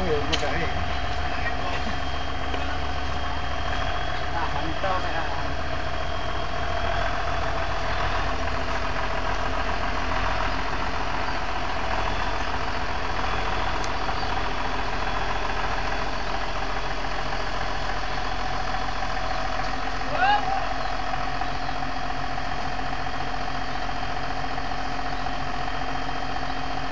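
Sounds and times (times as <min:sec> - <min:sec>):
tractor diesel engine running: 0:00.0 - 0:26.9.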